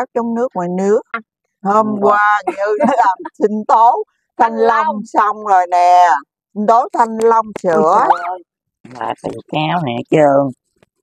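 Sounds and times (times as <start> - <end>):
woman talking: 0.0 - 10.6.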